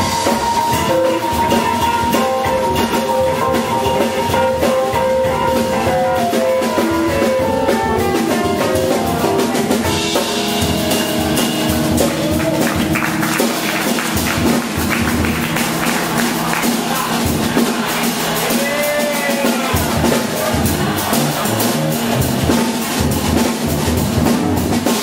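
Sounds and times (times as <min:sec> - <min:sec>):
double bass low notes: 0:00.0 - 0:18.7, 0:19.7 - 0:25.0
drum kit on cymbals and drums: 0:00.0 - 0:25.0.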